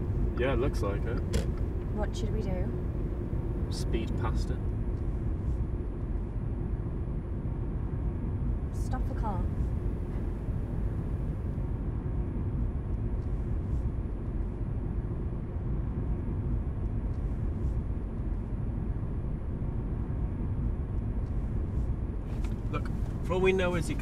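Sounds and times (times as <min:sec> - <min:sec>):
car engine running at low revs: 0:00.0 - 0:24.0.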